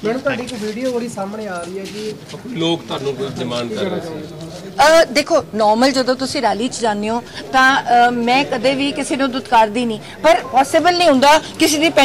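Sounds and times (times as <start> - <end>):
woman speaking: 0.0 - 2.2, 4.8 - 12.0.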